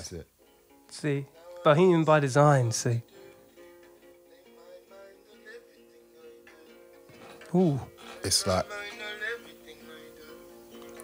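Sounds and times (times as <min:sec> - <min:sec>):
acoustic guitar from phone speaker: 0:00.0 - 0:11.0.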